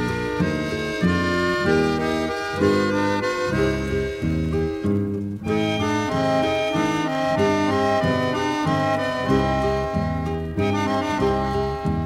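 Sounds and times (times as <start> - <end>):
instrumental song passage: 0.0 - 12.0.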